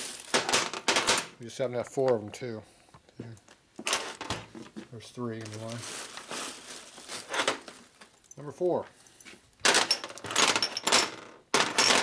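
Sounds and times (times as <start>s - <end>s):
metal parts clattering on bench: 0.3s - 1.4s, 9.6s - 12.0s.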